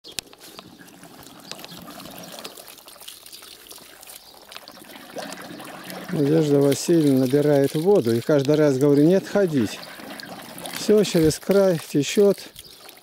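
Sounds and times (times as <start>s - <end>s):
water splashing from hose into pot: 0.1s - 13.0s.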